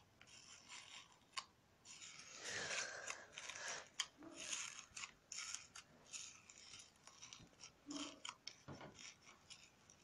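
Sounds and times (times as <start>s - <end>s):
fingers squishing slime: 0.0s - 10.0s.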